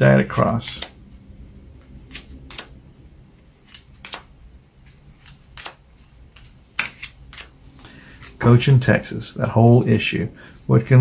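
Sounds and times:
cards sliding on paper: 0.3 - 1.2, 1.8 - 2.7, 3.3 - 8.7.

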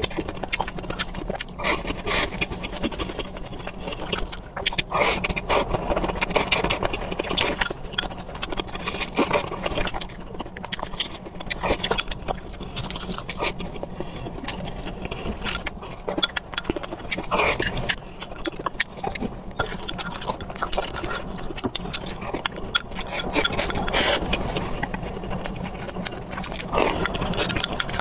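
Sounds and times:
chewing and lip-smacking: 0.0 - 28.0.

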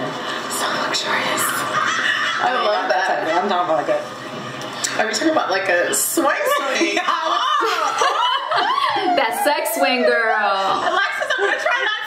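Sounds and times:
women laughing: 1.6 - 3.5, 6.6 - 12.0.

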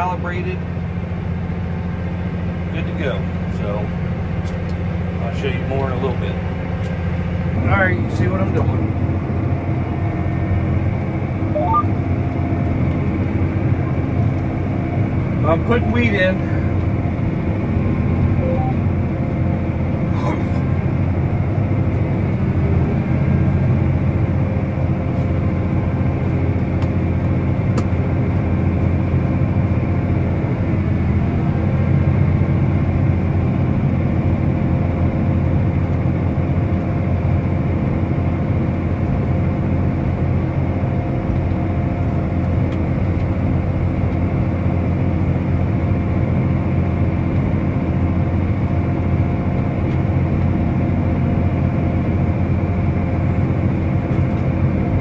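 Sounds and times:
tractor diesel engine droning: 0.0 - 55.0.

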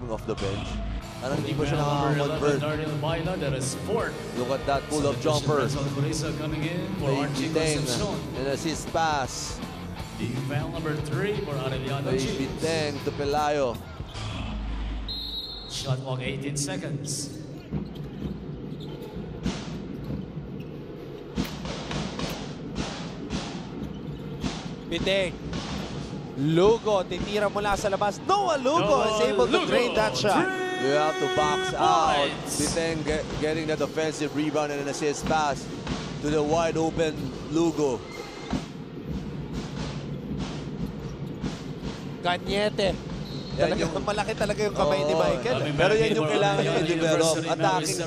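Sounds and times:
music in arena: 0.0 - 26.4
drums beating: 0.4 - 15.0, 17.3 - 48.0
crowd din: 24.5 - 37.9, 38.6 - 48.0.

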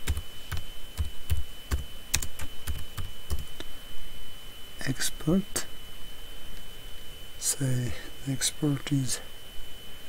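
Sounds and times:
computer keyboard typing: 0.0 - 3.5.

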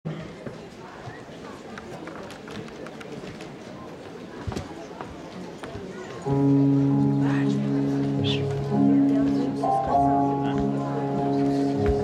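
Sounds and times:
audience murmuring: 0.1 - 12.0.

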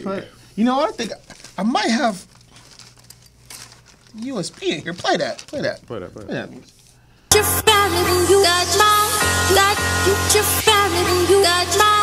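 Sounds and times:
rustling and crinkling handling: 0.7 - 7.0.

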